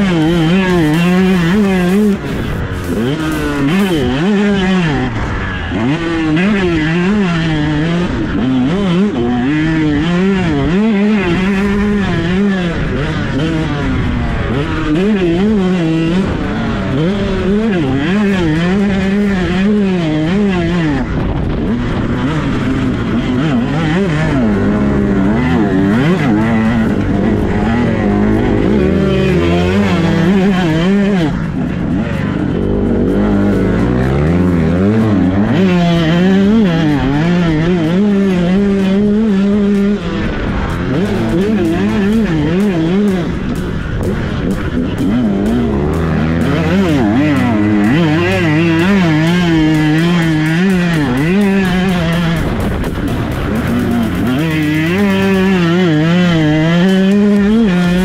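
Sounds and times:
two-stroke motocross engine revving: 0:00.0 - 0:58.0.

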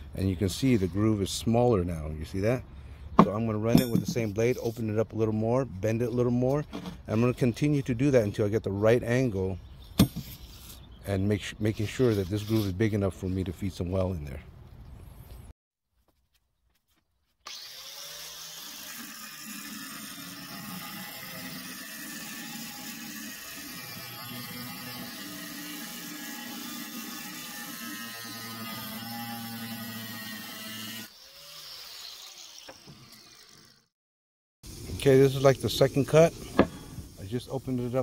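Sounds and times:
angle grinder cutting steel: 0:17.5 - 0:33.9.

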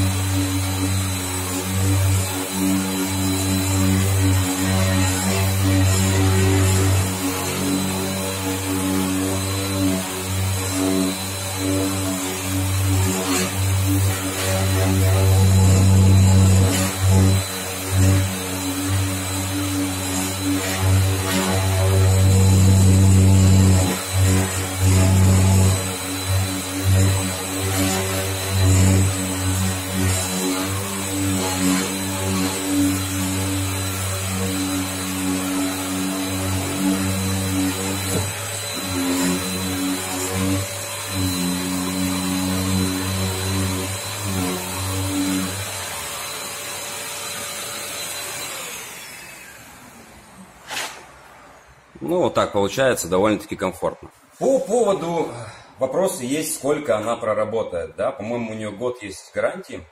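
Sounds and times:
orbital sander humming: 0:00.0 - 0:49.3.

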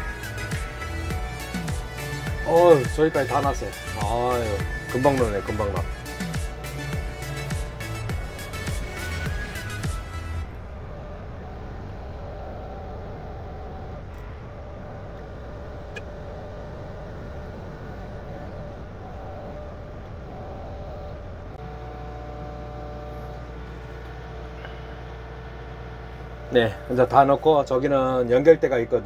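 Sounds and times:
background music: 0:00.0 - 0:10.7
excavator engine running: 0:00.0 - 0:29.0.

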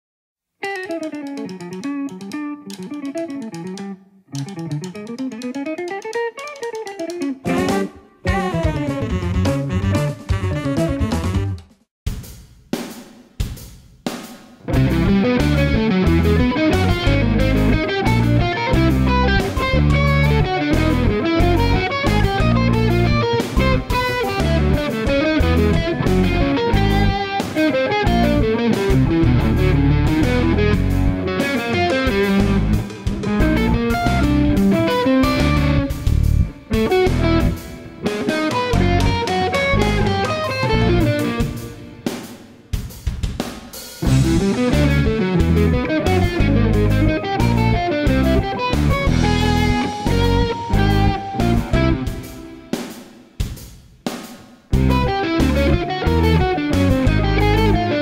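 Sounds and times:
electric guitar solo: 0:00.6 - 0:11.0, 0:14.7 - 0:42.2, 0:44.0 - 0:52.8, 0:54.7 - 0:58.0
backing track with drums: 0:00.6 - 0:58.0.

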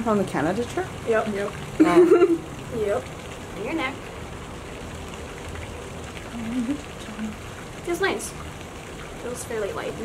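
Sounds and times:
low voice hum: 0:06.3 - 0:07.4.

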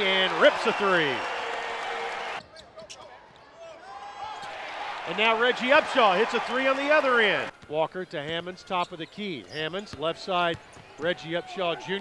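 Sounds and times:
arena crowd noise: 0:00.0 - 0:12.0
shoe squeaks on court: 0:02.4 - 0:03.1.

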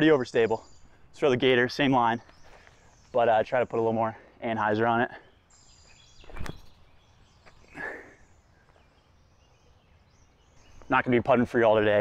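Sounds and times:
quiet outdoor ambience: 0:00.0 - 0:12.0.

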